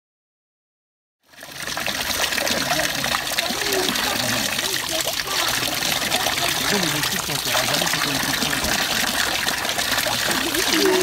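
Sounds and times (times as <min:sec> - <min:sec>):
water pouring into fountain basin: 0:01.2 - 0:11.0.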